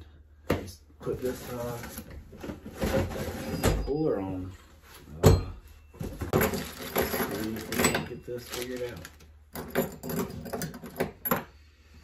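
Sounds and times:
rummaging tools on a workbench: 0.5s - 11.6s.

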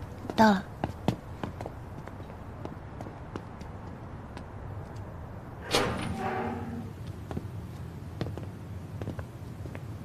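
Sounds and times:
footsteps on pavement: 0.1s - 5.1s, 7.0s - 9.9s.

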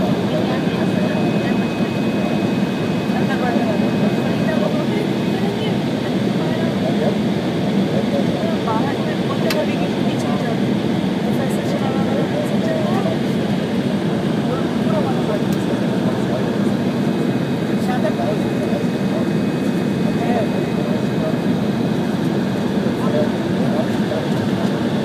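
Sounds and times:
airliner cabin engine noise: 0.0s - 25.0s
indistinct passenger voices: 0.0s - 25.0s.

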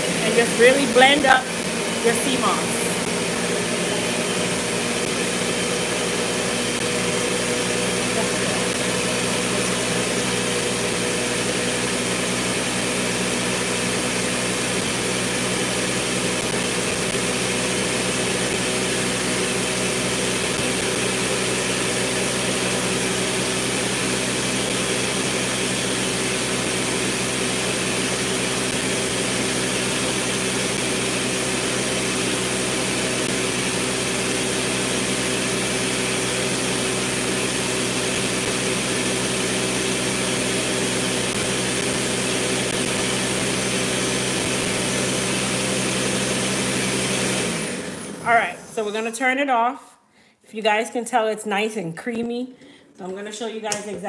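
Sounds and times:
blender motor running: 0.0s - 49.1s.

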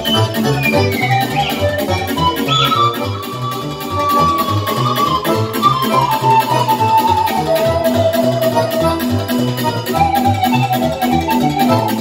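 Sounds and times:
keyboard accompaniment with bass beat: 0.0s - 12.0s
pan flute dance melody: 0.0s - 12.0s.

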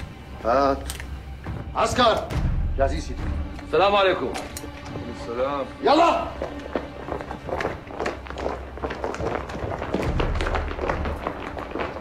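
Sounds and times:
low background music drone: 0.0s - 12.0s
boots walking on stone paving: 5.8s - 12.0s.

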